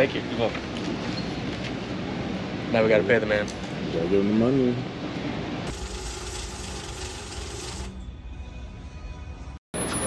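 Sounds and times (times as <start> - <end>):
banknote counting machine running: 5.7 - 8.0.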